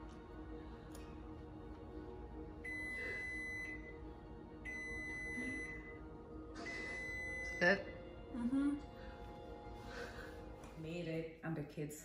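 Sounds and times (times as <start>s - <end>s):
background music: 0.0s - 12.0s
high electronic beep: 6.6s - 7.9s.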